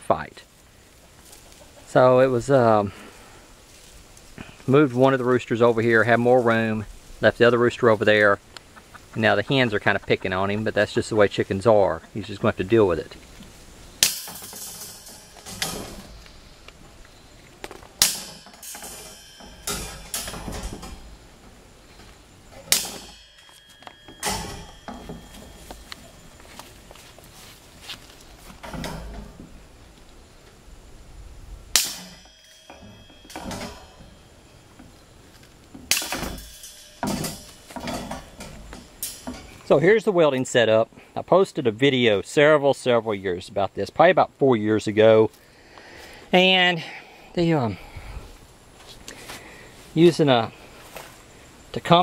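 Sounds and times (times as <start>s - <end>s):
wire panel handling noise: 13.3s - 16.9s, 17.6s - 27.1s, 27.9s - 30.0s, 31.7s - 39.7s.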